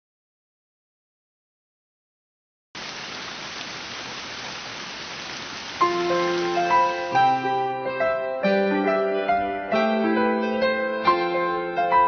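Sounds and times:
steady hiss: 2.8s - 7.7s
piano notes: 5.8s - 12.0s.

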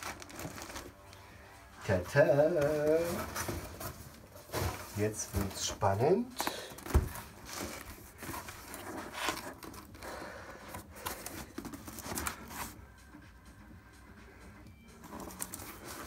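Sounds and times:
cardboard box scraping and rustling: 2.6s - 5.6s, 7.1s - 10.0s.

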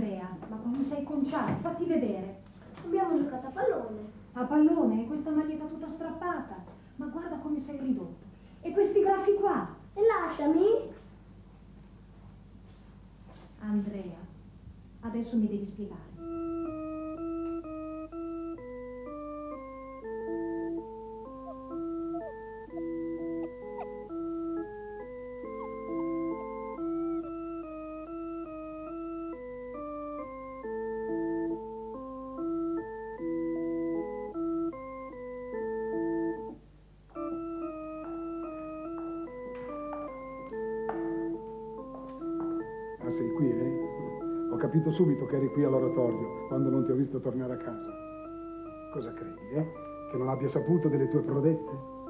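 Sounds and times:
electronic organ melody: 16.1s - 52.0s.

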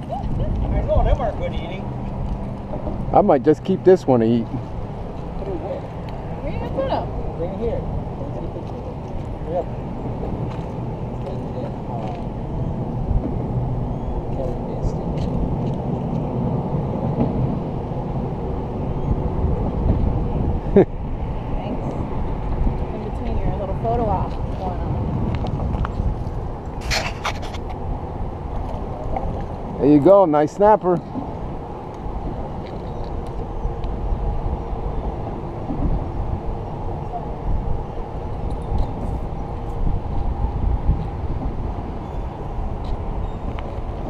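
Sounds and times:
traffic rumble: 0.0s - 44.0s
wind: 0.0s - 44.0s.

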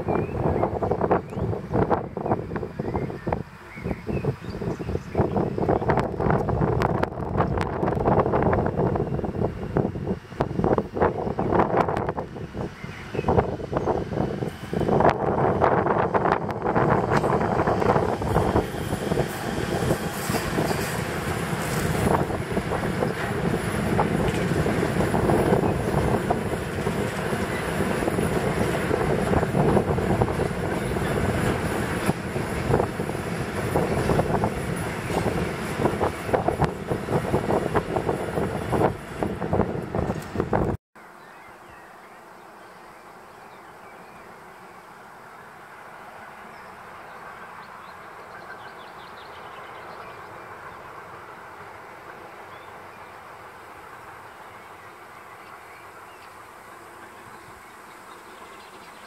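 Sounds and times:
freight wagons rolling rumble: 5.2s - 40.8s.

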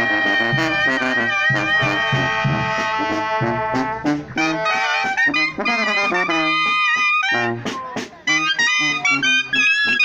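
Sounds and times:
brass band held high note: 0.0s - 10.0s.

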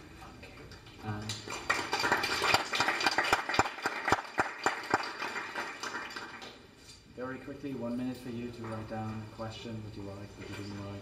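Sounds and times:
audience applauding: 1.3s - 6.6s.

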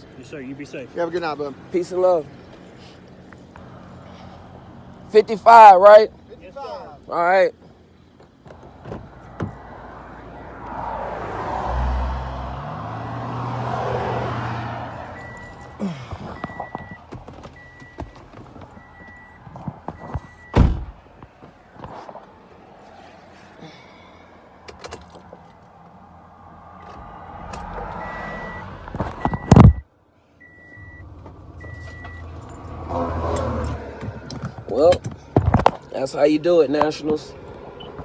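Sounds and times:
car warning chime beeping: 15.0s - 20.6s, 27.9s - 32.7s, 37.8s - 38.0s
loud thunk: 20.5s - 21.0s.

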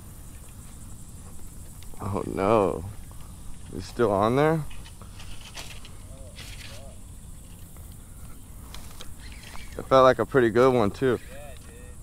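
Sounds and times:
fishing reel clicks and rustles: 3.1s - 10.1s.

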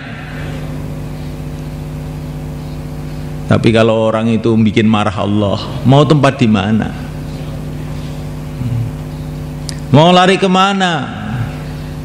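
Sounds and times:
machine low hum: 0.0s - 12.0s.

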